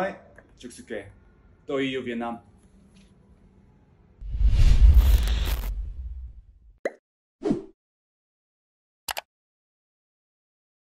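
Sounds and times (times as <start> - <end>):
low rumble: 4.2 - 6.7.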